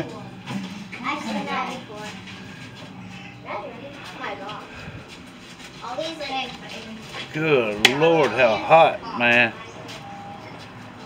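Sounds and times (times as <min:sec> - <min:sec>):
faint voices of people talking: 0:00.0 - 0:11.0.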